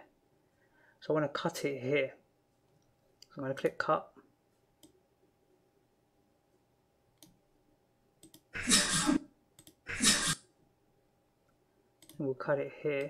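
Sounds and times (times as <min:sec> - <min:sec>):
computer mouse clicks: 0:08.2 - 0:08.5, 0:09.6 - 0:09.8, 0:12.0 - 0:12.2.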